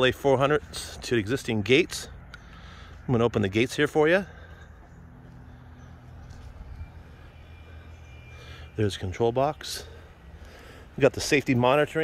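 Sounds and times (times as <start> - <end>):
faint high whine: 4.3 - 11.8.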